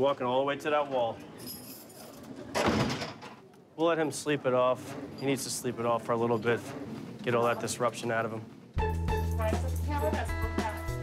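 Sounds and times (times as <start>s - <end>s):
keys and door rattling: 1.4s - 3.3s.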